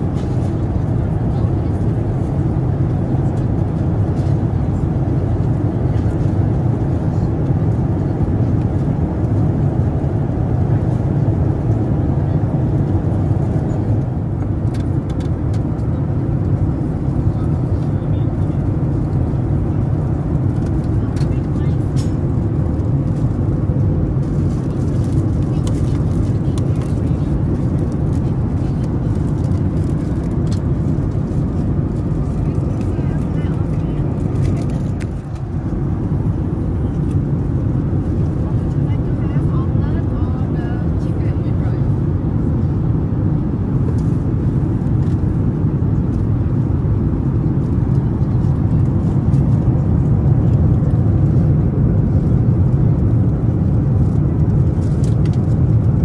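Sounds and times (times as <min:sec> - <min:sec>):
airplane cabin roar: 0:00.0 - 0:56.0.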